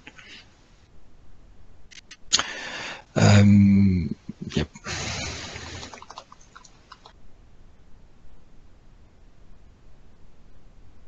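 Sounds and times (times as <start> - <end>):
microphone hiss burst: 1.8 - 3.4, 4.0 - 6.3.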